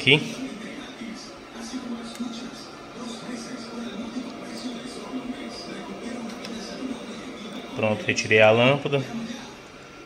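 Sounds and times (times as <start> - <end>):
faint television speech: 0.0 - 10.0
steady low hum: 0.0 - 10.0
television music: 0.0 - 10.0.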